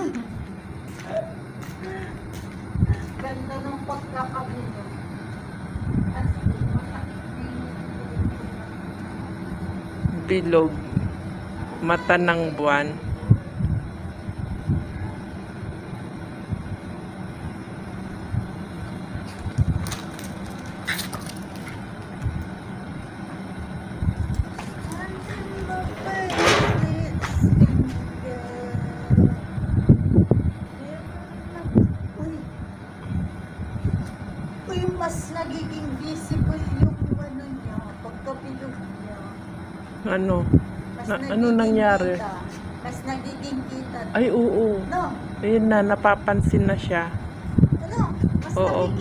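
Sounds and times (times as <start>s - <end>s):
steady low rumble: 0.0s - 49.0s.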